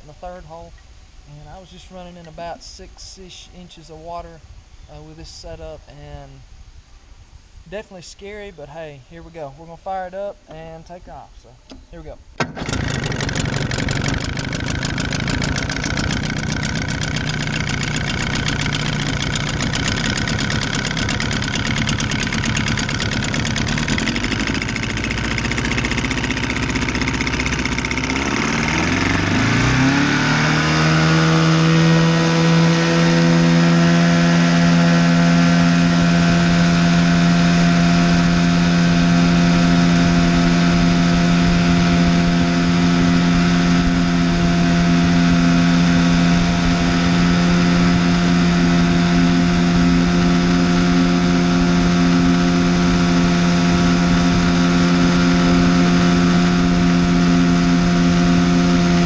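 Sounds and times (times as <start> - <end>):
outboard motor running: 12.0 - 59.0.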